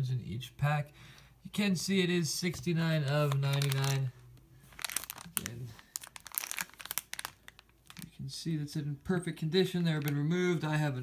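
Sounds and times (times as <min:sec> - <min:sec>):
foil packaging crinkling: 0:02.9 - 0:08.4, 0:09.6 - 0:10.8.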